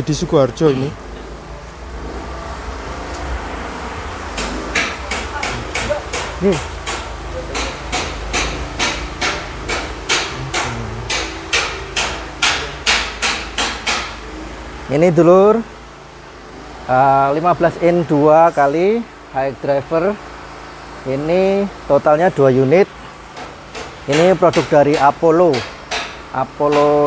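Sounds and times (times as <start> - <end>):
steady low hum: 0.0 - 17.9
sharp evenly spaced knocks: 4.3 - 14.3, 23.3 - 27.0.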